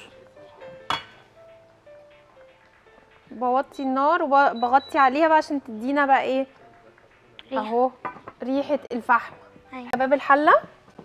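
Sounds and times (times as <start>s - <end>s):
faint background music: 0.0s - 11.0s
cookware clink: 0.9s - 1.3s, 8.0s - 8.4s.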